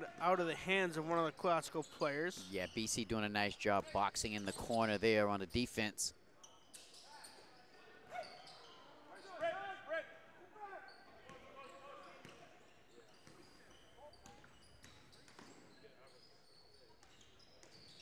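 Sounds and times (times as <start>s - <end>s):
sneaker squeaks: 6.4s - 9.4s, 10.7s - 18.0s.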